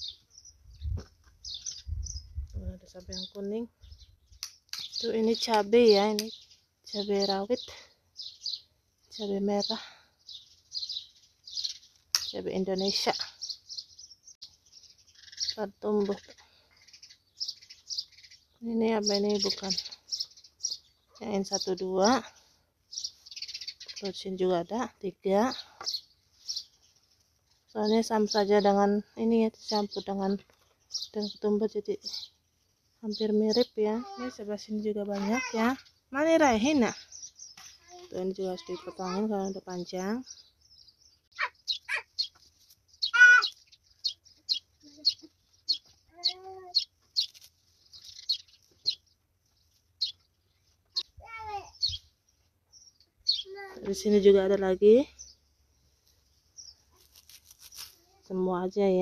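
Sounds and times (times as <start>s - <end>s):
small bird chirping: 0.0s - 59.0s.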